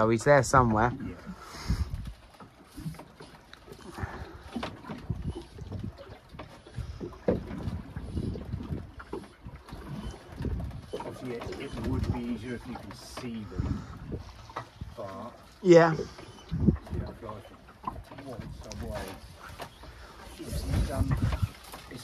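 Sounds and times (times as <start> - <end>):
wind buffeting microphone: 0.0 - 2.3, 3.9 - 15.3, 15.9 - 19.5, 20.4 - 22.0
waves slapping boat hull: 0.0 - 22.0.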